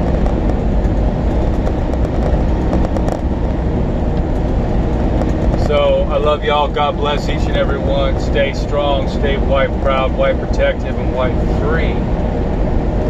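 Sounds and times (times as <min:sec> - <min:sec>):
truck engine and road noise: 0:00.0 - 0:13.0.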